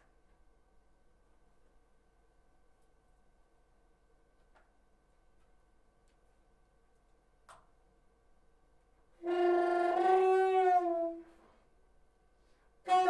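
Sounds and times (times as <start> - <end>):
saxophone long held note: 9.2 - 11.7, 12.5 - 13.0.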